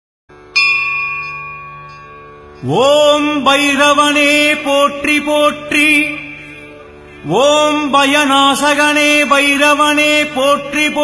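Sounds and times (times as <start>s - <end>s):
low steady drone: 0.3s - 11.0s
bell ringing: 0.5s - 3.2s.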